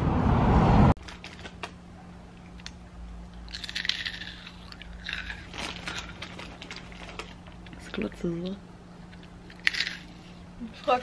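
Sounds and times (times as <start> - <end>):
low steady hum: 0.0 - 11.0
street traffic noise: 0.0 - 11.0
person crunching snacks: 3.4 - 8.0, 9.2 - 10.4.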